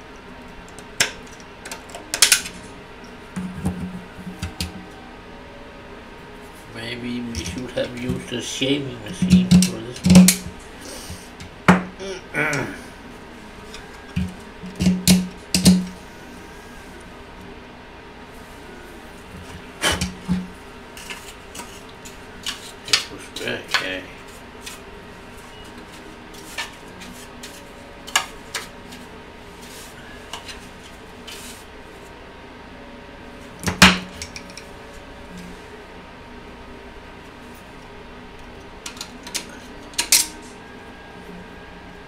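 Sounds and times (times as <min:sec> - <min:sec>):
low room hum: 0:00.0 - 0:42.0.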